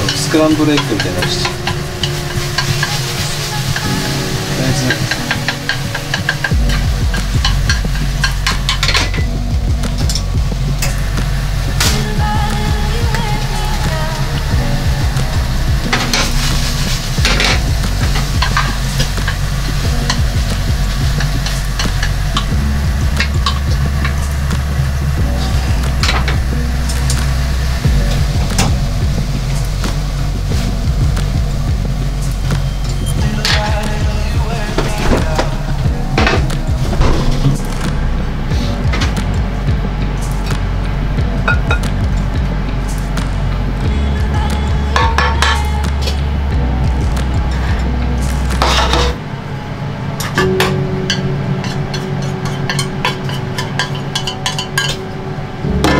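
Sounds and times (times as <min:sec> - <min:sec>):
chopsticks scraping metal pan: 0:00.0 - 0:09.2
egg sizzling in a pan: 0:00.0 - 0:34.0
background music with bass line: 0:00.0 - 0:55.9.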